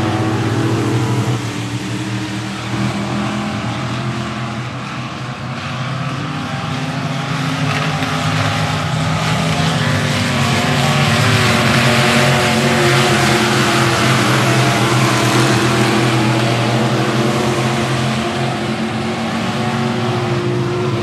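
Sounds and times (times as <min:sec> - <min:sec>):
race car engines running hard: 0:00.0 - 0:21.0.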